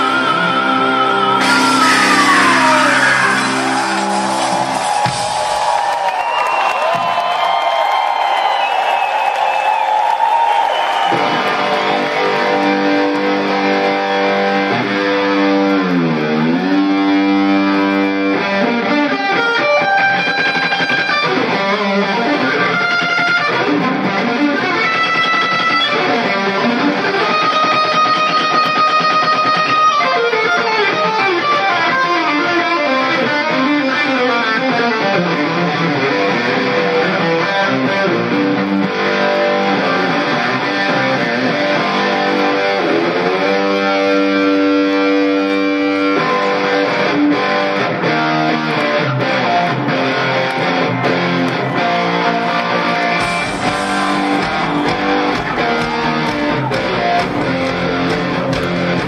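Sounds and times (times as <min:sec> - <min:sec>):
electric guitar melody: 0:00.0 - 0:05.2, 0:11.1 - 0:59.0
live rock band: 0:00.0 - 0:07.4, 0:10.8 - 0:59.0.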